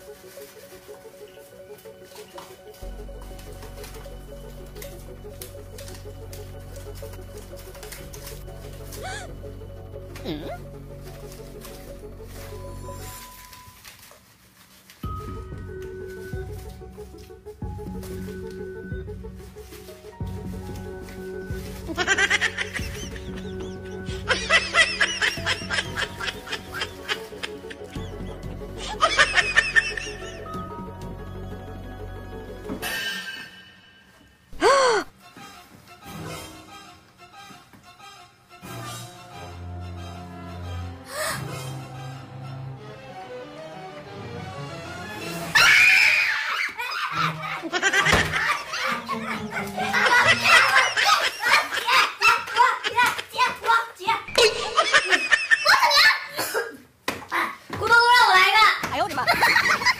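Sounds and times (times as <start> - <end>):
quiet background music: 0.0 - 59.9
high-pitched scream: 45.5 - 46.8.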